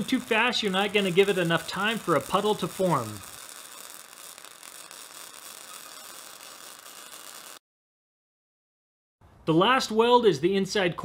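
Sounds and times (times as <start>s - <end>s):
welding arc crackling and hissing: 0.0s - 7.6s.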